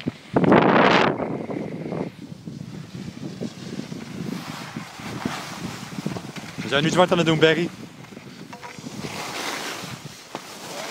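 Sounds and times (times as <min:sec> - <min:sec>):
wind rushing over microphone: 0:00.0 - 0:10.9.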